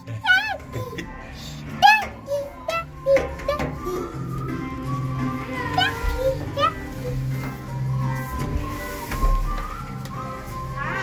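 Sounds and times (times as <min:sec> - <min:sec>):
background music: 0:00.0 - 0:11.0
children playing: 0:00.0 - 0:11.0.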